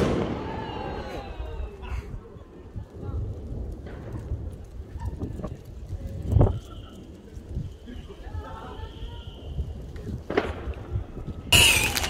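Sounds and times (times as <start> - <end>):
wind rumble: 0.0 - 12.0.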